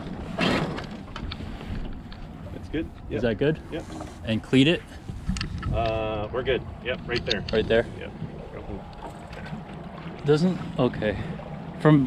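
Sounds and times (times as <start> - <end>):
water moving past hull: 0.0 - 12.0
wind buffeting microphone: 1.3 - 12.0.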